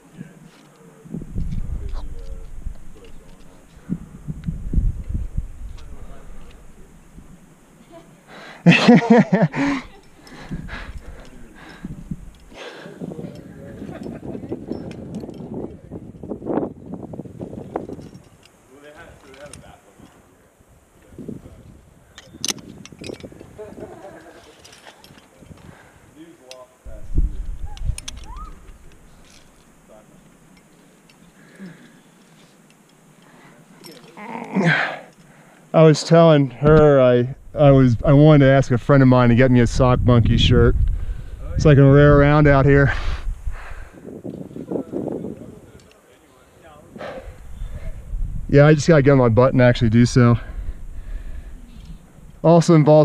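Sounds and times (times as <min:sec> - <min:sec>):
person laughing: 0:07.9 - 0:11.0, 0:23.6 - 0:24.6
carabiner clicking: 0:22.2 - 0:23.4, 0:27.5 - 0:29.7
rustling on rock: 0:26.9 - 0:35.3.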